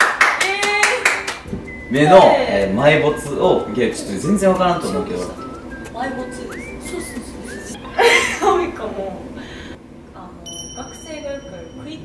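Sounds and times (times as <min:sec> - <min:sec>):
hands clapping: 0:00.0 - 0:01.6.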